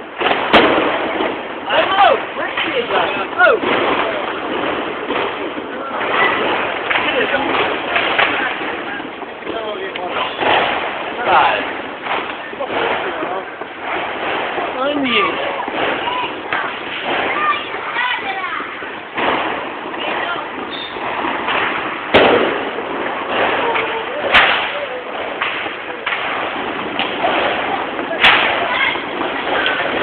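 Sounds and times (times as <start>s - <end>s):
distant explosions: 0.0s - 30.0s
fireworks bangs: 0.0s - 30.0s.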